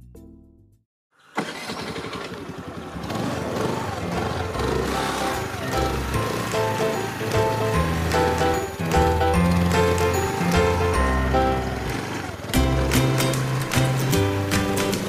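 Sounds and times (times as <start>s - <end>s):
scooter engine starting and running: 1.2s - 15.0s
background music: 3.8s - 15.0s.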